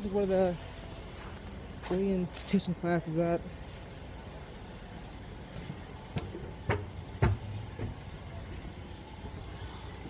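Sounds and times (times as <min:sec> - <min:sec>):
low rumble of vehicles: 0:00.0 - 0:10.0
footsteps on pavement: 0:00.6 - 0:02.8, 0:05.4 - 0:10.0.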